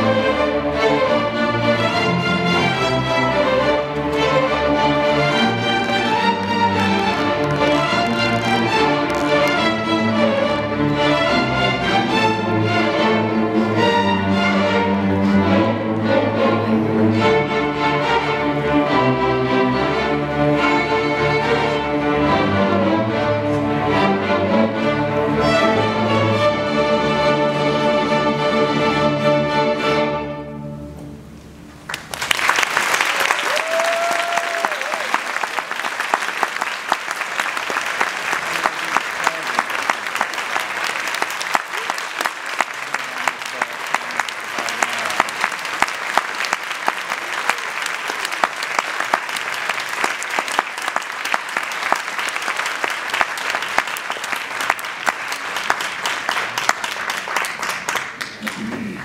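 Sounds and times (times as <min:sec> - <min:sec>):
audience applauding: 0:05.3 - 0:09.9, 0:31.9 - 0:59.0.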